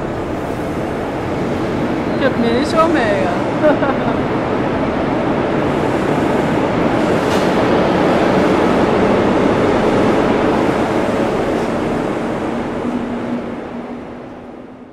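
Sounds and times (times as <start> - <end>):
train rumbling: 0.0 - 14.9.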